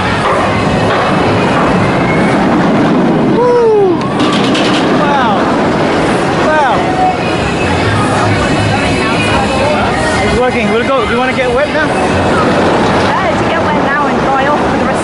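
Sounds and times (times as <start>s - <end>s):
funfair din: 0.0s - 15.0s
roller coaster running: 0.0s - 15.0s.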